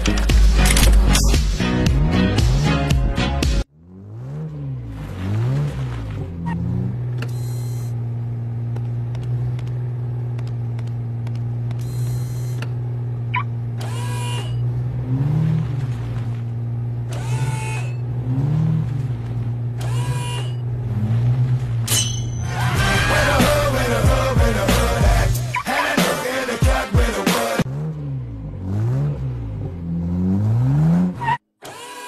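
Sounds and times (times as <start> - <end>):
sports car engine humming: 0.0 - 31.4.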